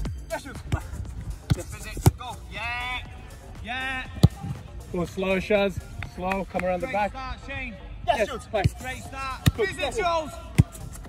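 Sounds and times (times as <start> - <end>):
background music: 0.0 - 11.0
ball kicked with thud: 4.2 - 4.6.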